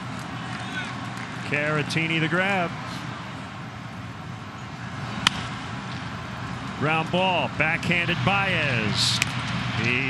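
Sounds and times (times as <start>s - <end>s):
ballpark ambience hum: 0.0s - 10.0s
wooden bat cracking baseball: 5.2s - 5.6s.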